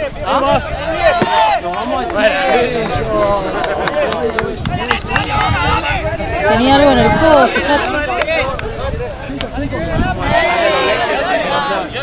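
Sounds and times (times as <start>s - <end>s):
players shouting to one another: 0.3s - 4.1s, 9.8s - 11.9s.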